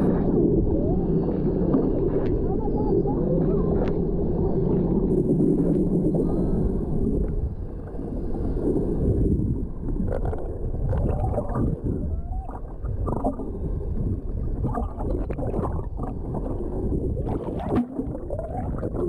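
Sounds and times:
underwater rumble of moving water: 0:00.0 - 0:19.0.

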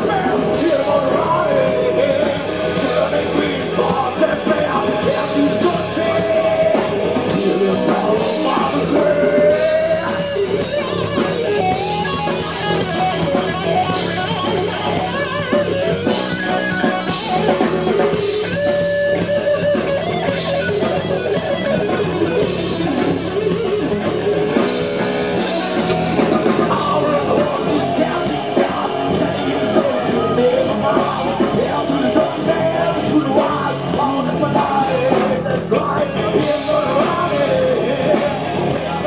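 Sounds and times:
bass guitar: 0:00.0 - 0:39.0
drum kit: 0:00.0 - 0:39.0
electric guitar: 0:00.0 - 0:39.0.

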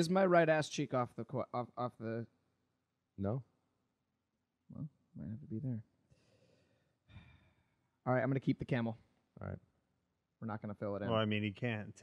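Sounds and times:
person breathing: 0:06.1 - 0:07.9.

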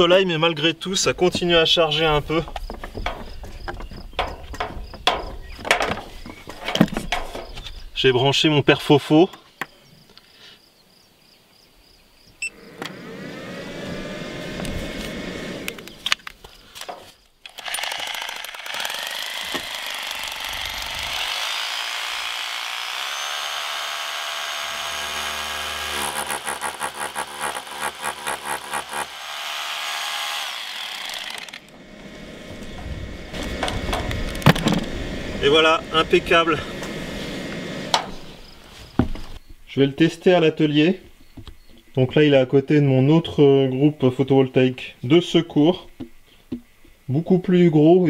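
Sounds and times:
hammer drill blows: 0:17.5 - 0:38.0
drill motor whining: 0:17.5 - 0:38.6.

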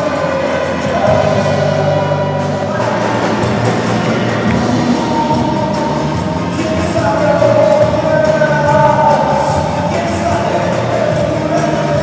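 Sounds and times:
live band with horns: 0:00.0 - 0:12.0.

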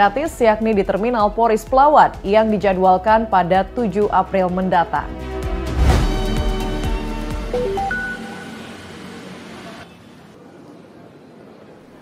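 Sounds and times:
news jingle high note: 0:07.5 - 0:09.2.

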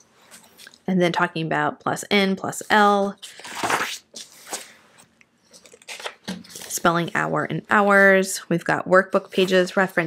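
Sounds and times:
paper pages rustling: 0:03.2 - 0:07.3.

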